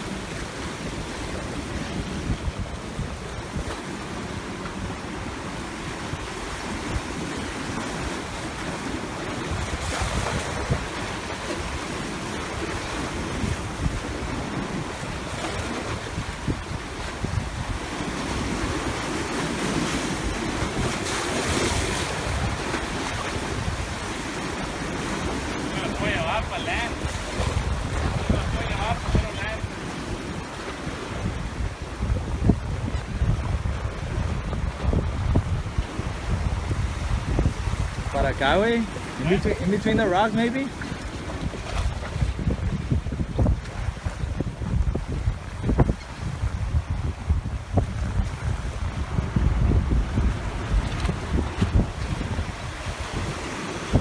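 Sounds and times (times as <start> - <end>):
surf washing against rocks: 0.0 - 54.0
wind buffeting microphone: 0.0 - 54.0.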